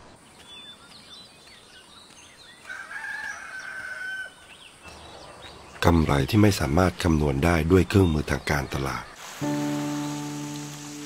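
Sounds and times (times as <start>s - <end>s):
small birds chirping: 0.0s - 11.0s
rooster crowing: 2.7s - 4.4s.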